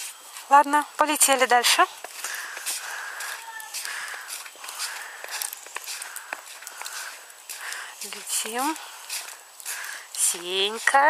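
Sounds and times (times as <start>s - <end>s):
footsteps crunching through snow: 0.0s - 11.0s.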